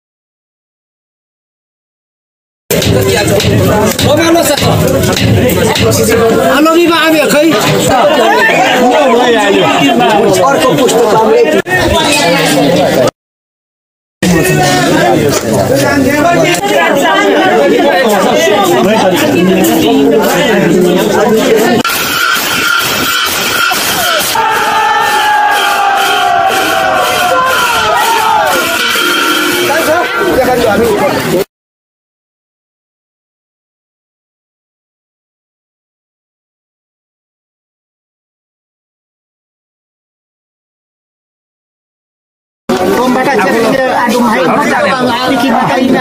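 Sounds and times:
people chattering: 2.7s - 13.1s, 14.2s - 31.5s, 42.7s - 46.0s
group of voices chanting: 23.8s - 29.8s.

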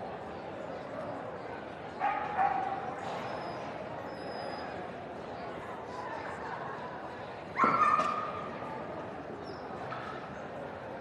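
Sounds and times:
dog barking: 2.0s - 2.7s.

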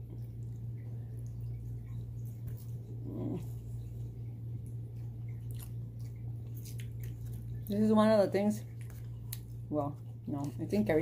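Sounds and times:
steady low hum: 0.0s - 11.0s
chewing clicks: 0.4s - 7.8s, 8.6s - 10.6s.

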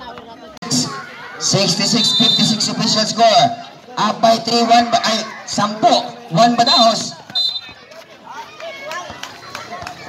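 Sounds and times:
referee's whistle: 1.8s - 2.8s, 6.6s - 7.8s.

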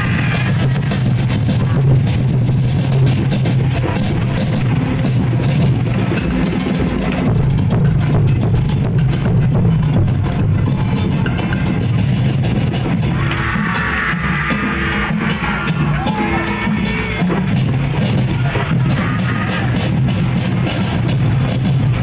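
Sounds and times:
loud drum-heavy music: 0.0s - 22.0s.

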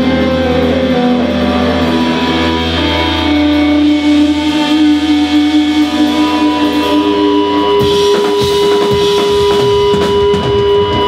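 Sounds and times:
bass guitar: 0.0s - 11.0s
drum kit hits: 0.0s - 11.0s
electric guitars sustained notes: 0.0s - 11.0s.

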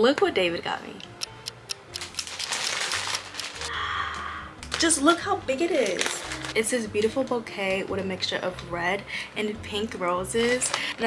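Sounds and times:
paper wrapping crinkling and rustling: 2.0s - 3.7s, 4.6s - 6.8s, 10.4s - 11.0s.

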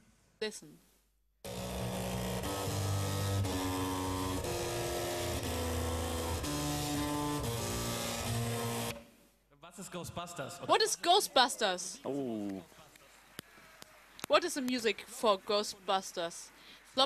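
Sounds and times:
floppy drives buzzing a melody: 1.4s - 9.0s.

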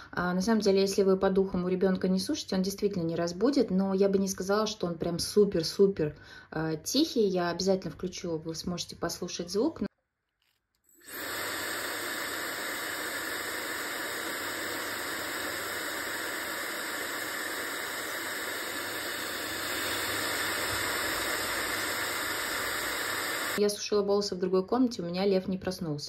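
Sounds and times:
hair dryer running: 11.0s - 23.6s.

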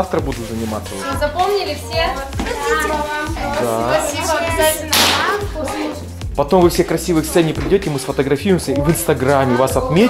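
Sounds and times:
background music: 0.0s - 10.0s
sharp swish: 4.9s - 5.5s.

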